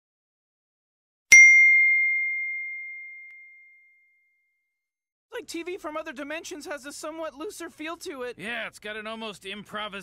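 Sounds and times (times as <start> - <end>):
notification bell ding: 1.3 - 4.0.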